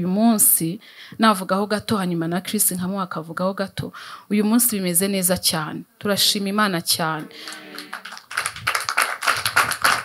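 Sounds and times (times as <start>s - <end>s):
applause: 7.2s - 10.0s.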